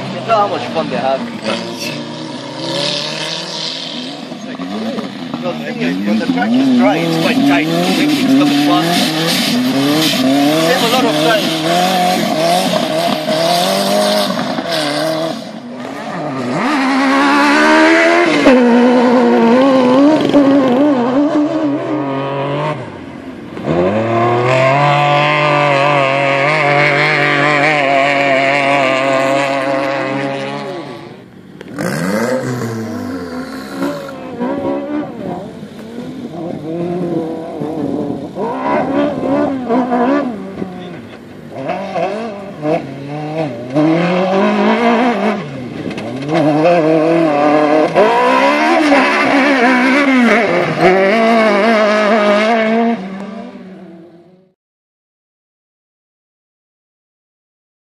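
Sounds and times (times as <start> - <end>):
racing buggy engines revving: 0.0 - 54.6.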